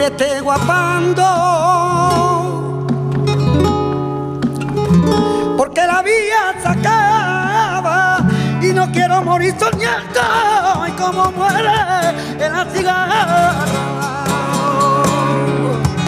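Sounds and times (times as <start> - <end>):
man singing with vibrato: 0.0 - 3.0, 5.2 - 16.0
acoustic guitar: 0.0 - 16.0.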